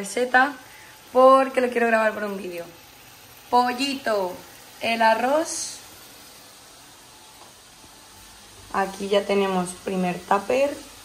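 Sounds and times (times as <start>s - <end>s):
food hissing on a stovetop: 0.0s - 11.0s.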